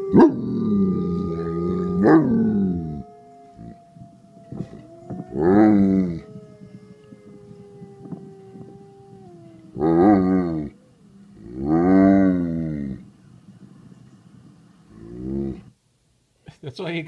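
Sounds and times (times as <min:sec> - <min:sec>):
dog howling: 0:00.0 - 0:13.0
wolf howl from speakers: 0:00.0 - 0:13.0.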